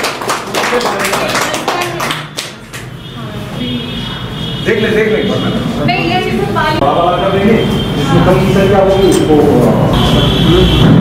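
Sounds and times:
people clapping: 0:00.0 - 0:03.0.

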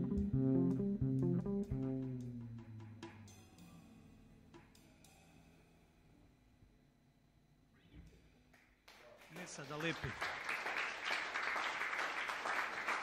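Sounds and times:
electric bass run: 0:00.0 - 0:03.3
jazz trio playing: 0:00.0 - 0:03.7.

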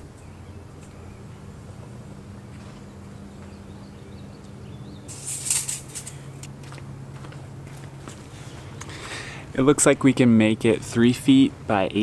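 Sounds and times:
steady low hum: 0:00.0 - 0:12.0
loud rustling scrape: 0:05.1 - 0:06.2.

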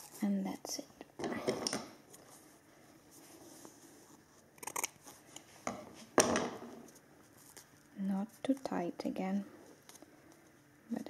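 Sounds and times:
tape rustling: 0:06.8 - 0:08.7.

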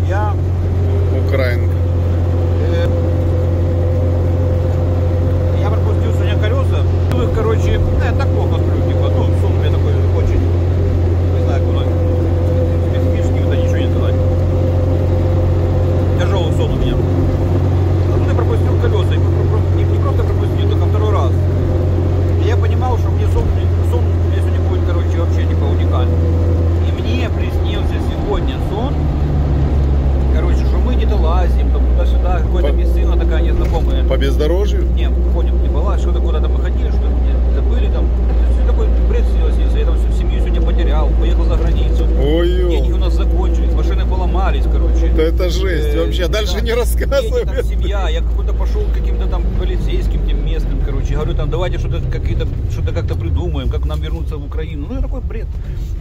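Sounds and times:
vehicle engine drone inside cabin: 0:00.0 - 0:56.0.

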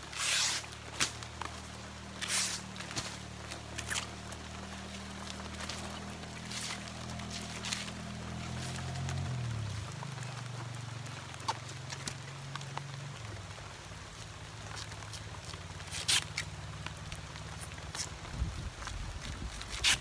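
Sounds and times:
fibre strips ripping: 0:00.0 - 0:09.5, 0:14.7 - 0:18.2, 0:18.8 - 0:20.0.

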